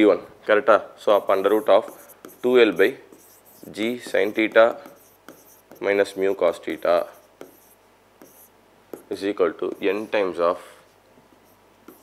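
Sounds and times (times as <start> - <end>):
stylus scratching on glass: 1.1 - 10.2, 11.4 - 12.0.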